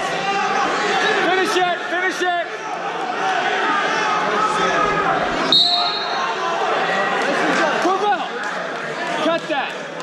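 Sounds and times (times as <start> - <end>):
voices calling and chattering: 0.0 - 10.0
shrill whistle blast: 5.5 - 6.2.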